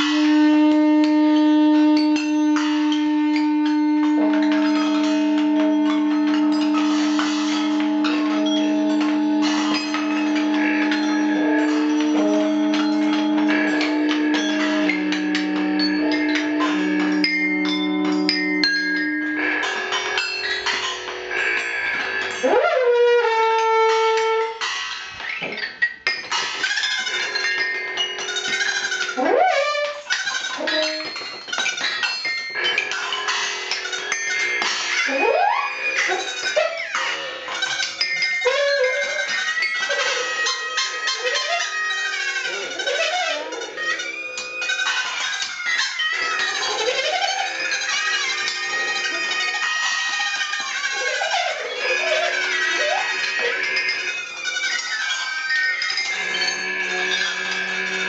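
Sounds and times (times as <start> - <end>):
scraping and rattling noises: 0.0 - 58.0
squealing sliding tones: 0.0 - 58.0.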